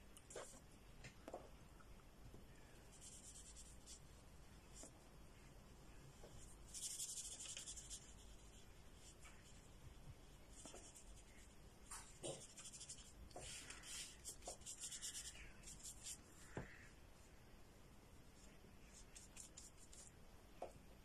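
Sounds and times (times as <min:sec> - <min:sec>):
paintbrush scratching on paper: 0:00.3 - 0:00.6, 0:02.9 - 0:04.1, 0:06.4 - 0:16.5, 0:18.4 - 0:20.1.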